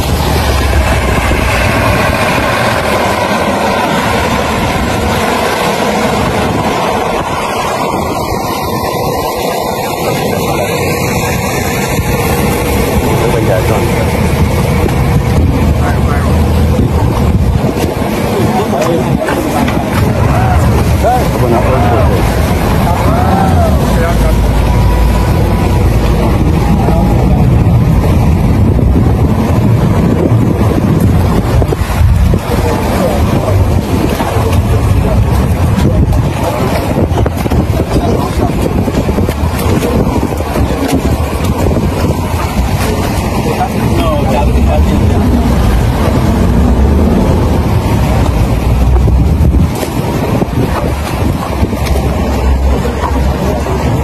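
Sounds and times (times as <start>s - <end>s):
speedboat engine running: 0.0s - 54.0s
water noise: 0.0s - 54.0s
wind buffeting microphone: 0.0s - 54.0s.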